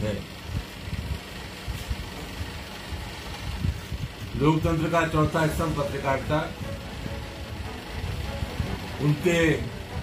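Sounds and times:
low uneven rumble: 0.0s - 10.0s.

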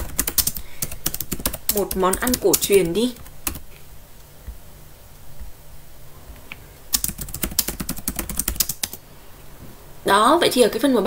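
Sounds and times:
typing on computer keyboard: 0.0s - 3.6s, 6.9s - 9.0s.

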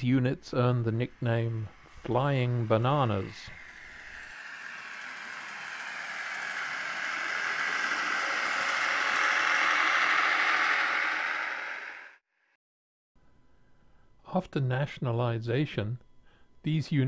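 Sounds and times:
passing train rushing: 0.5s - 12.2s.

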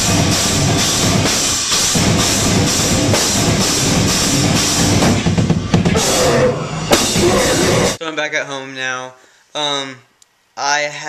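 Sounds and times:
bass drum: 0.0s - 8.0s
cymbal beat: 0.0s - 8.0s
metal band playing loud: 0.0s - 8.0s.

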